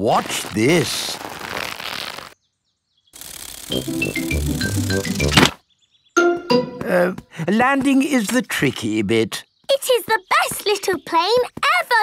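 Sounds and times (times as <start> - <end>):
toy propeller whirring: 3.2 - 3.8.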